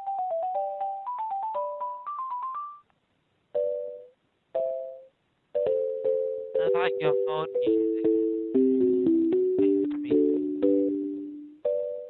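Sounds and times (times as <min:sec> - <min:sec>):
keyboard hold music over phone: 0:00.0 - 0:02.9, 0:03.5 - 0:12.0
person speaking: 0:06.6 - 0:08.2, 0:09.7 - 0:10.6.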